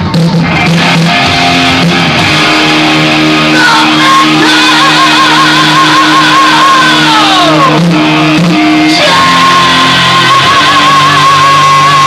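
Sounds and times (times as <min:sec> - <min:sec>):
heavy metal band playing live: 0:00.0 - 0:12.0
high screamed vocal note: 0:02.5 - 0:07.8, 0:08.5 - 0:12.0.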